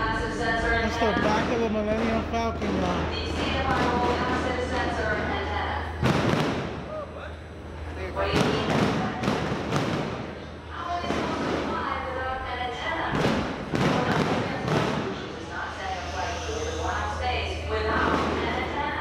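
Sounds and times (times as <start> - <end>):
crowd voices: 0.0 - 19.0.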